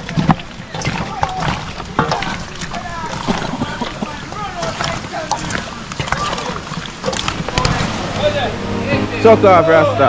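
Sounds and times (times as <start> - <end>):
people talking and calling: 0.0 - 10.0
steady rushing noise: 0.0 - 10.0.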